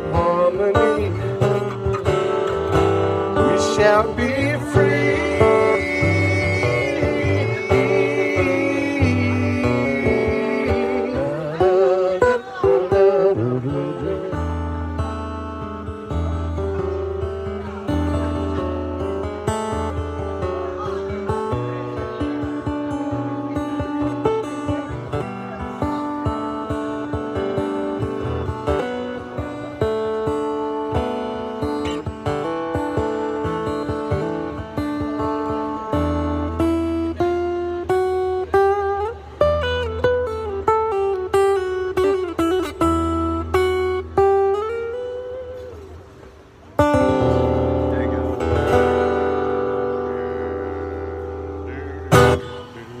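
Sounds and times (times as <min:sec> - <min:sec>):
acoustic guitar fingerpicking: 0:00.0 - 0:53.0
wordless sung line: 0:00.0 - 0:53.0.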